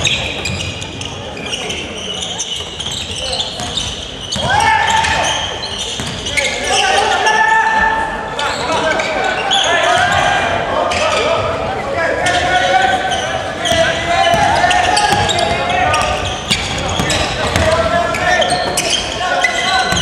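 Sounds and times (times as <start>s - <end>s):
sneakers squeaking on hardwood: 0.0s - 7.0s, 12.2s - 20.0s
people shouting: 4.4s - 5.4s, 12.0s - 16.2s
basketball bouncing: 6.0s - 6.2s, 13.6s - 17.9s.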